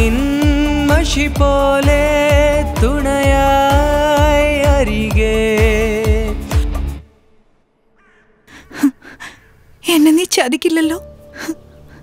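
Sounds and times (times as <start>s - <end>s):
song with held sung note: 0.0s - 6.8s.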